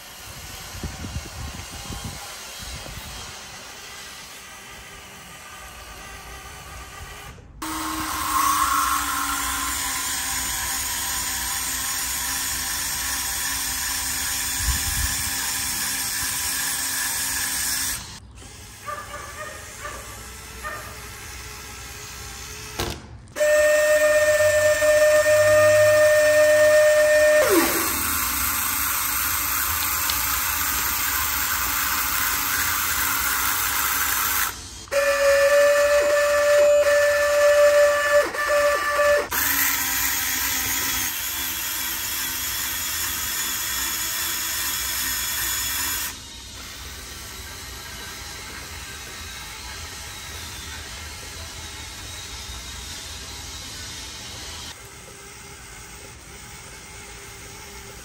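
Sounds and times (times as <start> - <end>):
small electric motors whining: 0.0 - 58.0
steady whirring noise: 42.8 - 58.0.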